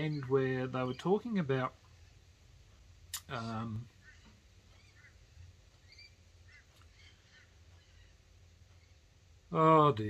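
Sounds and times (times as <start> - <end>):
faint high chirps: 3.2 - 5.2, 5.8 - 9.1.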